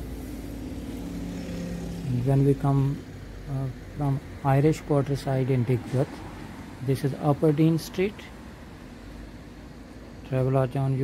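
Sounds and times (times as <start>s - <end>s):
bus engine driving past: 0.0s - 10.2s.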